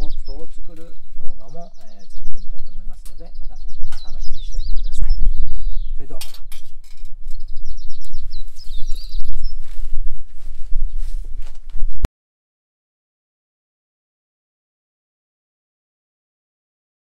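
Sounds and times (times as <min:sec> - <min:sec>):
small birds chirping: 0:00.0 - 0:11.6
wind rumble on microphone: 0:00.0 - 0:12.1.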